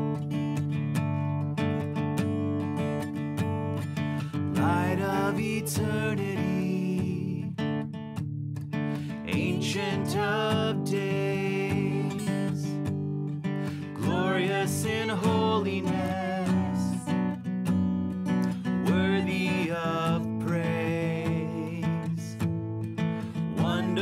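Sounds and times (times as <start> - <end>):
acoustic guitar strumming: 0.0 - 24.0
man and woman singing: 4.6 - 7.5, 9.3 - 12.8, 13.7 - 17.2, 18.8 - 22.3, 23.6 - 24.0.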